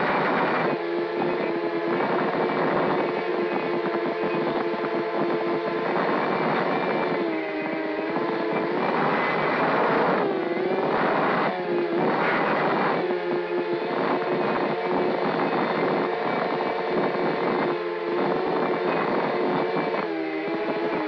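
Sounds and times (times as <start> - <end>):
drone motors whining: 0.0 - 21.0.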